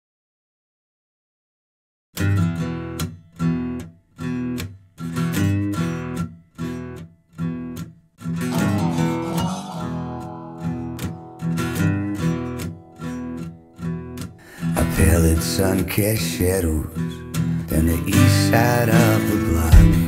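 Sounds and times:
sliding guitar melody: 8.4s - 15.9s
acoustic guitar strumming chords: 8.4s - 20.0s.

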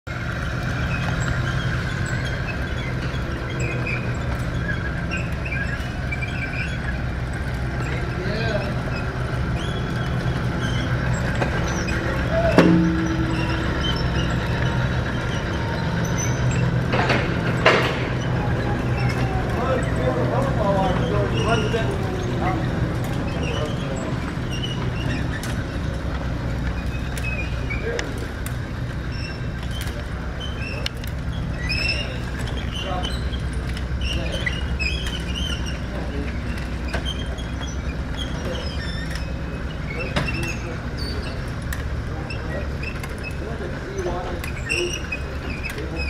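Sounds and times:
motor humming and rattling: 0.1s - 46.0s
sharp metal clank: 11.7s - 15.6s
knocks: 12.5s - 15.3s.

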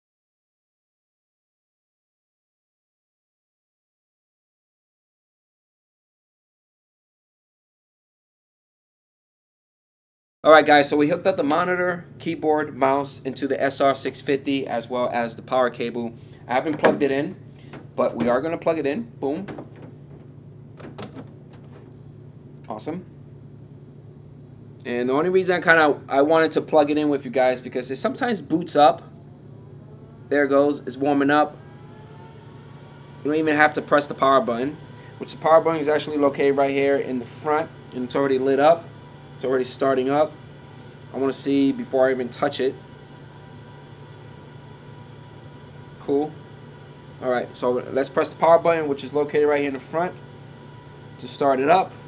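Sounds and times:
low steady hum: 10.5s - 52.0s
power cord clicks and rubs: 19.4s - 22.1s.

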